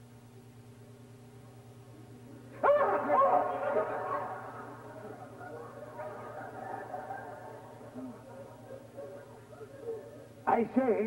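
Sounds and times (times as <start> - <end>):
low steady hum: 0.0 - 11.0
person yelping: 2.6 - 4.4.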